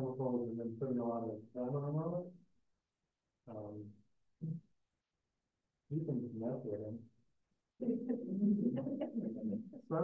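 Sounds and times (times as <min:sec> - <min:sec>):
person laughing: 0:07.8 - 0:09.9.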